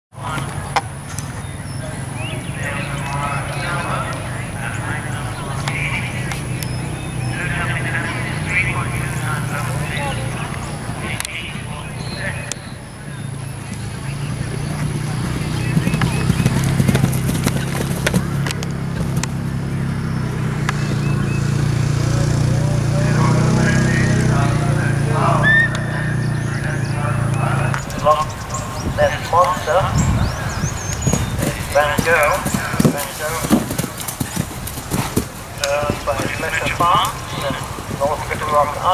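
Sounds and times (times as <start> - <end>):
birds chirping: 0.1 - 38.9
distant people talking: 0.1 - 38.9
horse hoofbeats on grass: 2.2 - 24.4, 27.4 - 38.9.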